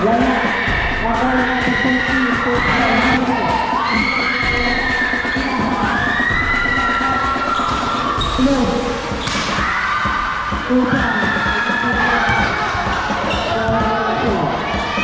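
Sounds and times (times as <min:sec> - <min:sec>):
crowd noise: 0:00.0 - 0:15.0
spectators shouting and cheering: 0:00.0 - 0:15.0
ball bouncing on floor: 0:12.3 - 0:12.6.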